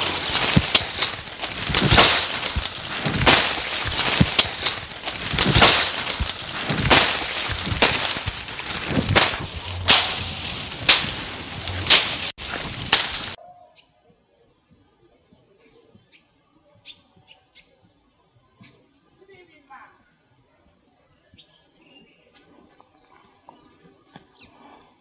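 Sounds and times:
machete slashing through dry grass: 0.0s - 13.4s
faint bird chirps: 13.4s - 24.6s.

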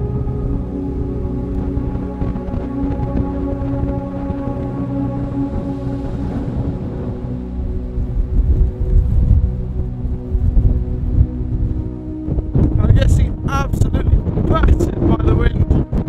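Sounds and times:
music with long held tones: 0.0s - 16.0s
wind buffeting microphone: 0.0s - 16.0s.

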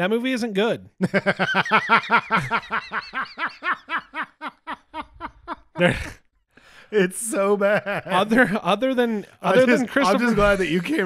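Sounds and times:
person laughing hard: 1.0s - 6.2s.

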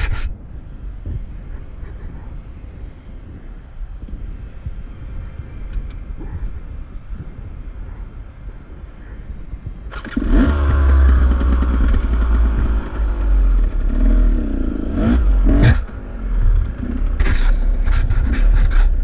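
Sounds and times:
dirt bike engine revving: 9.9s - 19.0s.

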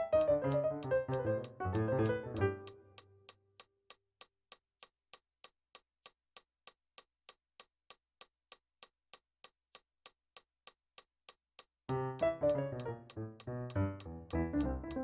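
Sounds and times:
keyboard piano chords: 0.0s - 3.0s, 11.9s - 15.0s
metronome clicking: 0.0s - 3.7s, 11.9s - 15.0s.

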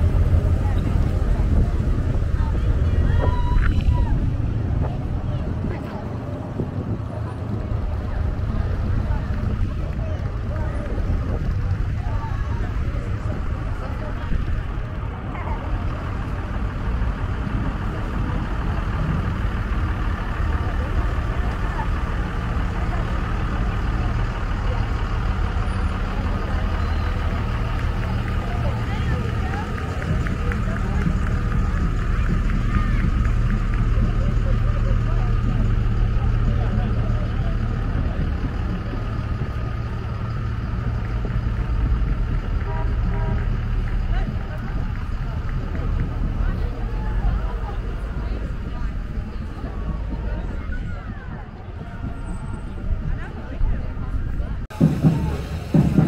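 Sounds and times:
people talking: 0.0s - 56.0s
trucks driving slowly past: 0.0s - 56.0s.

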